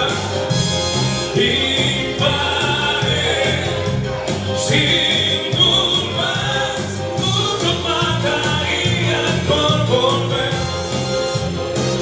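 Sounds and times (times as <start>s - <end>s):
man singing into microphone: 0.0s - 4.0s, 4.6s - 10.9s
band accompaniment: 0.0s - 12.0s.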